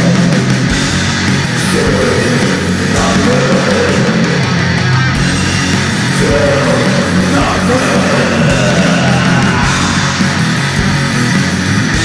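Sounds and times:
thrash metal music: 0:00.0 - 0:12.0.

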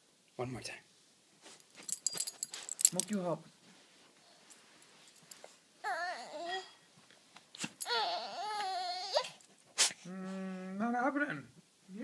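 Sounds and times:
handling noise rustling: 0:01.4 - 0:05.7.

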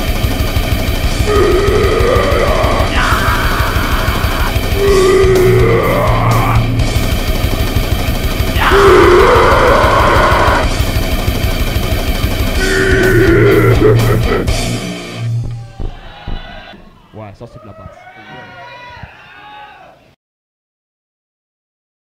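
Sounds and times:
distorted metal band playing: 0:00.0 - 0:17.4
rapid drumming: 0:00.0 - 0:17.5.

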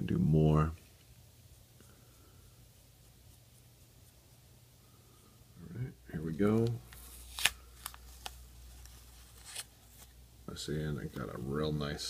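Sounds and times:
tape peeling with faint crinkling: 0:06.3 - 0:10.2.

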